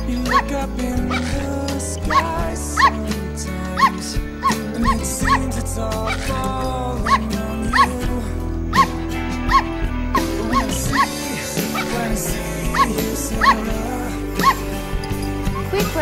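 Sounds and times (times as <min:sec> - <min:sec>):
song with acoustic guitar: 0:00.0 - 0:16.0
small dog yapping: 0:09.5 - 0:09.7.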